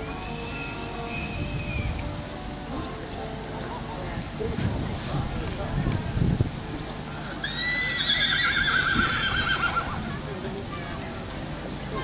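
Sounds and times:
horse whinnying: 7.4s - 10.1s.

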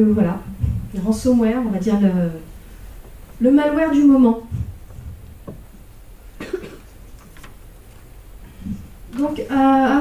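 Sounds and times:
person coughing: 6.4s - 6.9s.

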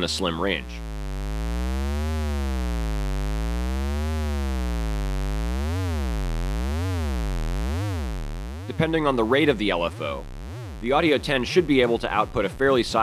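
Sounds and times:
synth tone sweeping up and down: 0.0s - 13.0s.

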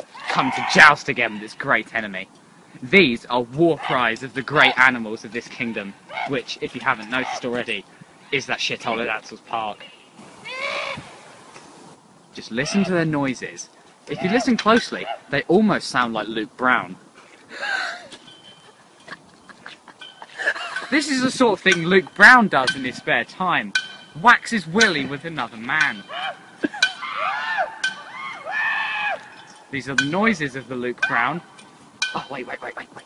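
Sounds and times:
distant boys yelling: 0.0s - 1.7s, 12.4s - 13.1s, 14.1s - 15.3s, 24.8s - 29.4s
metal pole clinking on ground: 14.1s - 15.0s, 18.1s - 27.1s, 27.8s - 28.1s, 29.2s - 32.6s.

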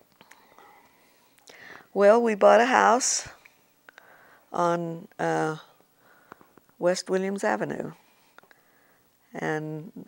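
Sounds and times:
woman speaking: 1.9s - 3.4s, 4.5s - 5.8s, 6.8s - 8.0s, 9.3s - 10.0s
soft mouth clicks: 8.3s - 8.6s.

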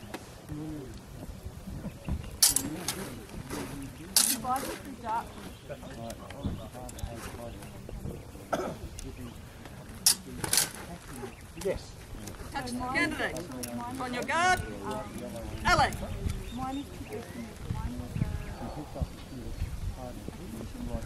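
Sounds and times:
onlookers talking: 0.0s - 21.0s.

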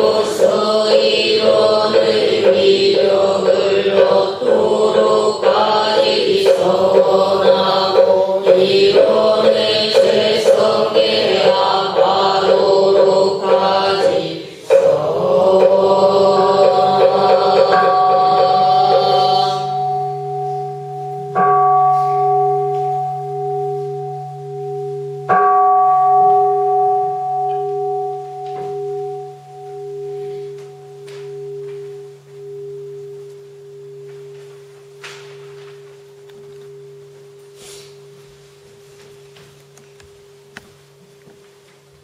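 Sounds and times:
bowl bell ringing: 0.0s - 41.2s.

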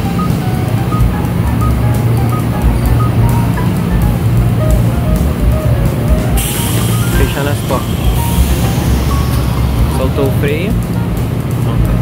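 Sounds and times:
train equipment humming: 0.0s - 12.0s
air brakes hissing: 6.3s - 10.8s.

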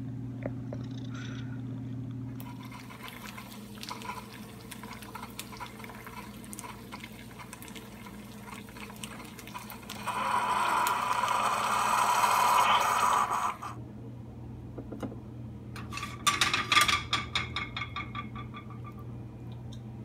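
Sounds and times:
coffee stream pouring: 2.4s - 13.8s.

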